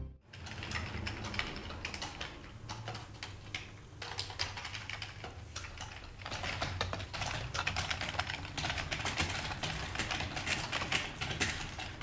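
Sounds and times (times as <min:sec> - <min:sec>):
keyboard keys clicking: 0:00.3 - 0:12.0.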